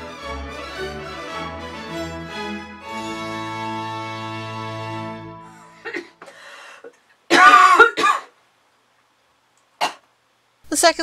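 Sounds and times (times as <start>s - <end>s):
woman coughing: 5.8s - 6.3s, 7.3s - 8.3s, 9.8s - 10.0s
woman clearing her throat: 7.3s - 8.3s.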